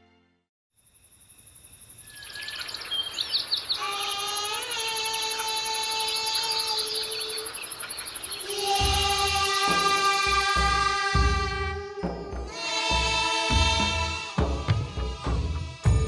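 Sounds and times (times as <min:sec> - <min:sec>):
insects chirring: 0:00.8 - 0:10.8
bird chirps: 0:00.9 - 0:10.3.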